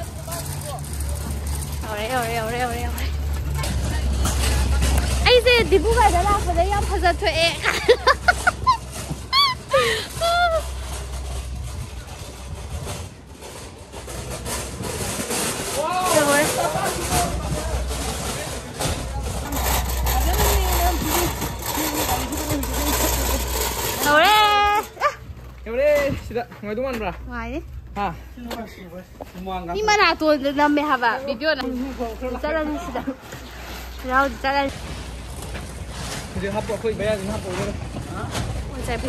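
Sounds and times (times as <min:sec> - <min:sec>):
wind rumble on microphone: 0:01.1 - 0:19.5
woman talking and laughing: 0:05.3 - 0:10.8.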